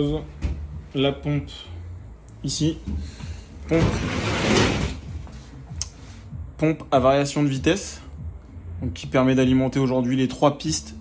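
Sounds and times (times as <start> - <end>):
steady low hum: 0.0 - 11.0
scraping rustle: 3.7 - 5.6.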